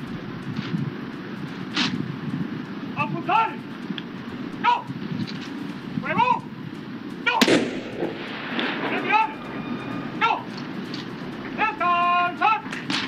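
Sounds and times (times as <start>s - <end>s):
shouted military commands: 3.0s - 3.6s, 4.6s - 5.0s, 6.0s - 6.5s, 7.2s - 7.6s, 8.6s - 12.8s
gun salute shot with echo: 7.3s - 10.6s.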